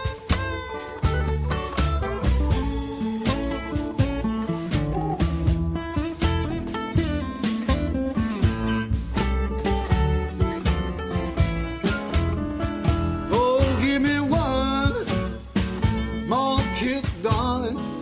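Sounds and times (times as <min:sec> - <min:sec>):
steady beat: 0:00.0 - 0:17.6
acoustic guitar lead lines: 0:00.0 - 0:18.0
rhythm guitar: 0:00.0 - 0:18.0
person singing: 0:13.3 - 0:15.4, 0:16.2 - 0:18.0.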